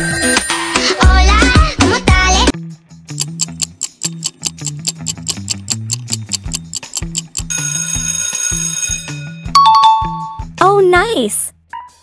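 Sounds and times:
clock ticking: 3.2 - 7.5.

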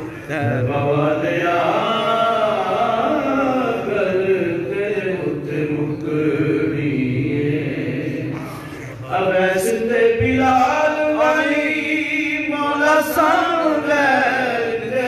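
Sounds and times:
man chanting into a microphone: 0.0 - 15.0.

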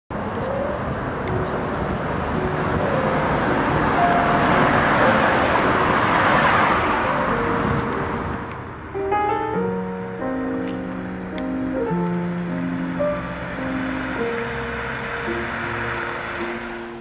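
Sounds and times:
street traffic rush: 0.1 - 17.0
car passing: 0.2 - 17.0.

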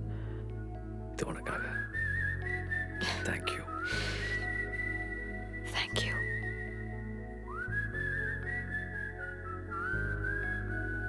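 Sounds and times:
whistle-like film music melody: 1.2 - 11.0.

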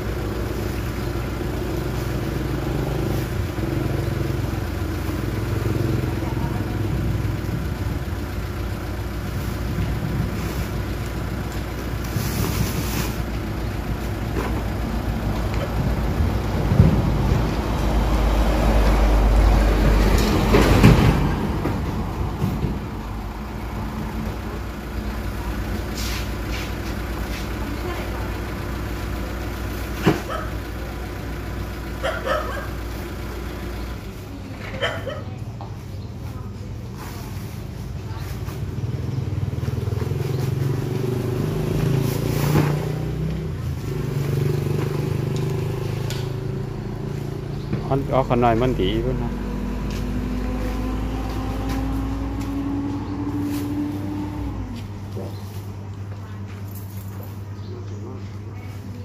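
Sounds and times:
vehicle engine rumbling: 0.0 - 59.0.

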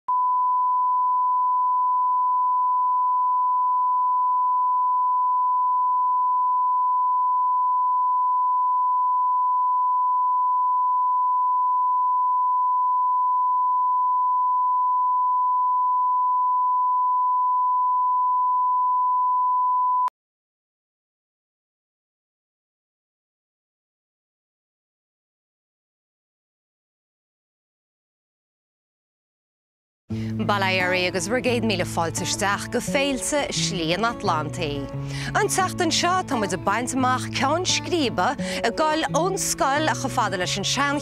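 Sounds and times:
steady sine reference tone: 0.1 - 20.1.

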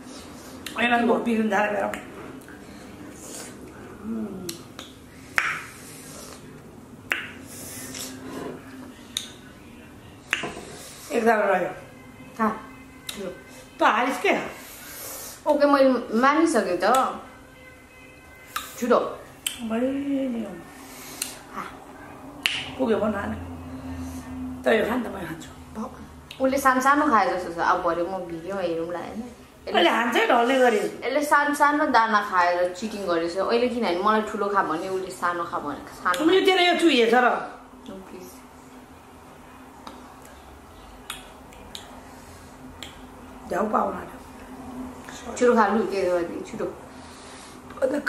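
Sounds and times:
faint low hum: 0.0 - 48.0
woman speaking: 0.8 - 2.1, 11.1 - 14.6, 18.8 - 20.8, 22.6 - 38.5, 43.4 - 44.4, 45.1 - 46.9, 47.8 - 48.0
lip smacks and licks: 4.5 - 5.7, 21.2 - 21.4, 41.0 - 42.0, 42.8 - 43.0.

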